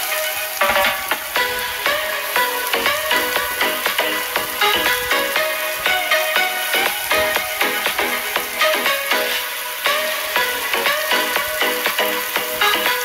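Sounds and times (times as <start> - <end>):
background music with steady beat: 0.0 - 13.0
onions sizzling in hot oil: 0.0 - 13.0.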